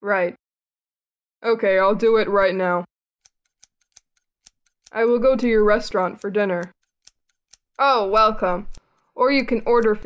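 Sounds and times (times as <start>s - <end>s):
scissors snipping hair: 3.2s - 10.0s.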